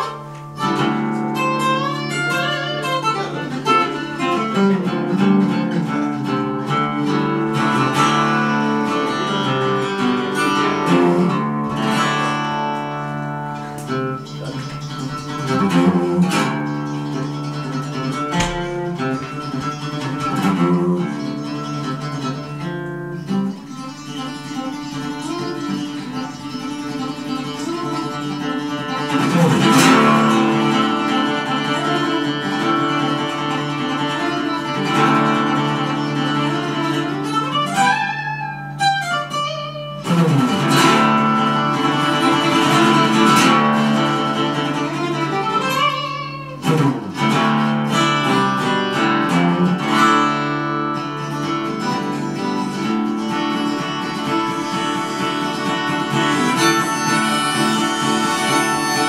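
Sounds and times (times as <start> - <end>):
fingerstyle acoustic guitar: 0.0 - 59.0.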